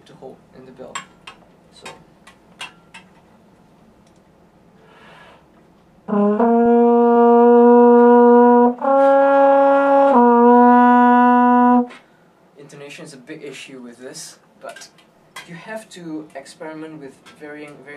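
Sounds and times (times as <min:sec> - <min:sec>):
breath: 0:04.8 - 0:05.5, 0:12.0 - 0:12.4
french horn long note: 0:06.1 - 0:11.9.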